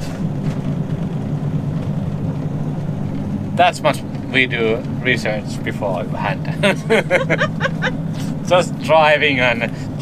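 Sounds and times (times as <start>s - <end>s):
diesel engine and tyre hum: 0.0s - 10.0s.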